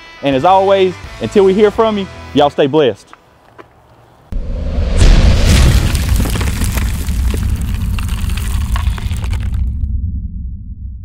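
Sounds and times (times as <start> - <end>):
deep rumbling boom: 4.4 - 11.0
dense crackle: 5.4 - 9.9.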